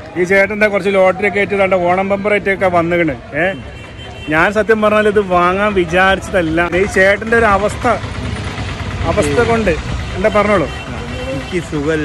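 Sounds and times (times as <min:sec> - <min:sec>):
vehicle engine rumble: 0:03.2 - 0:12.0.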